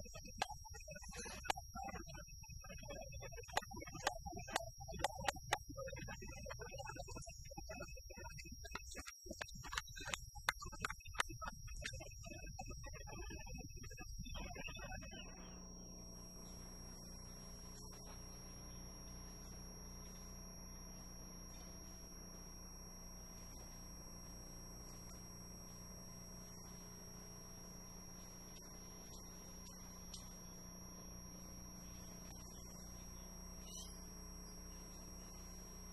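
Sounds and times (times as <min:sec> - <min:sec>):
electrical hum with high whine: 0:00.0 - 0:35.9.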